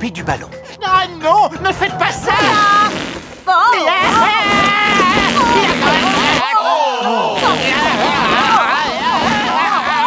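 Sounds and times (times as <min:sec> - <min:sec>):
balloon deflating squeal: 0:02.4 - 0:06.4, 0:07.4 - 0:10.0.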